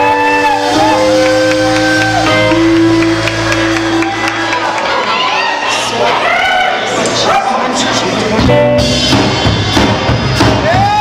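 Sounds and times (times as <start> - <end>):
electric guitar held notes: 0.0 - 4.9.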